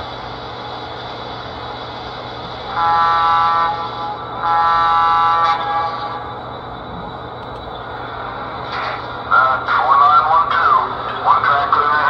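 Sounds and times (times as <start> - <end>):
model locomotives running and rolling: 0.0 - 12.0
electronic locomotive horn: 2.6 - 8.0.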